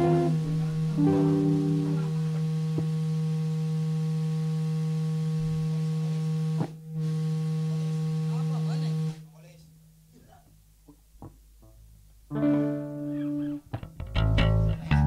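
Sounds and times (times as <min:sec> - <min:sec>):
band holding low note: 0:00.0 - 0:09.7.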